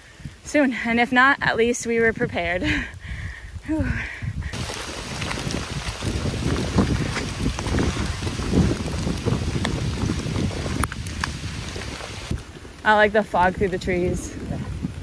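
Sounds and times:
wind rumbling on microphone: 0.0 - 15.0
faint crackles: 4.5 - 15.0.

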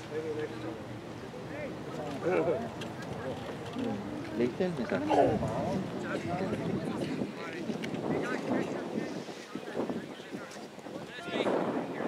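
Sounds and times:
people talking indistinctly: 0.0 - 12.0
wind on microphone: 2.2 - 12.0.

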